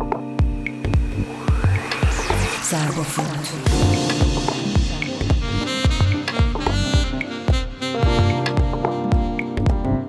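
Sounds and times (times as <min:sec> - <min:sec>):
drum machine beat: 0:00.0 - 0:02.6, 0:03.7 - 0:10.0
synthesizer chords: 0:00.0 - 0:10.0
rising synth noise sweep: 0:00.7 - 0:06.3
swooping high effects: 0:00.9 - 0:05.8
low synth bass tone: 0:03.7 - 0:07.2.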